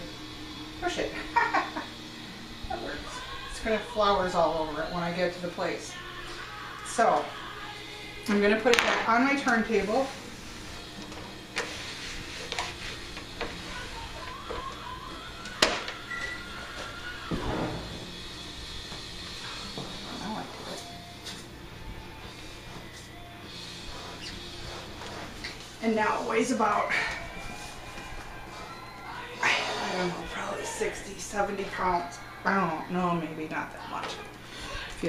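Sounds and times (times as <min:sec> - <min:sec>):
faint music: 0:00.0 - 0:35.0.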